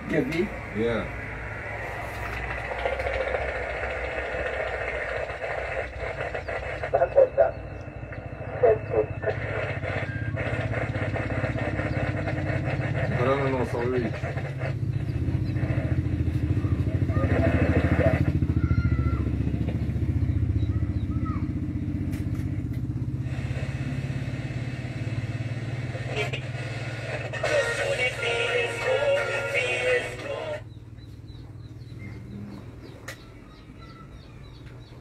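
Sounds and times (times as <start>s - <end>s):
low hum with static: 0.0s - 16.1s
radio tuning whistles: 0.5s - 14.8s, 23.2s - 30.7s
snatches of music and voices: 26.0s - 30.7s.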